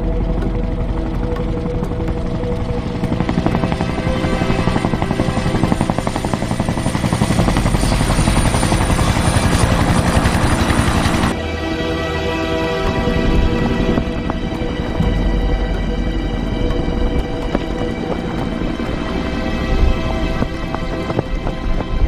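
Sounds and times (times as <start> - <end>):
helicopter rotor chopping: 0.0 - 11.4, 12.2 - 22.0
film score music: 0.0 - 22.0.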